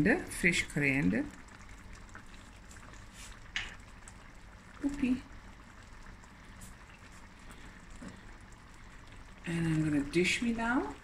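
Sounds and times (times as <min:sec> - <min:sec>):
curry bubbling with small pops: 0:00.0 - 0:11.0.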